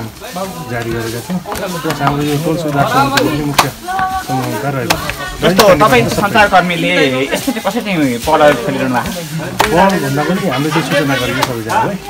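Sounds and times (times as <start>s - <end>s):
man talking into microphone: 0.0s - 12.0s.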